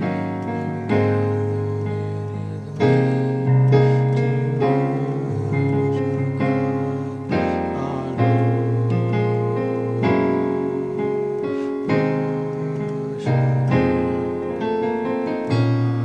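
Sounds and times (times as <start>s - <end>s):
gospel piano chords: 0.0s - 16.0s.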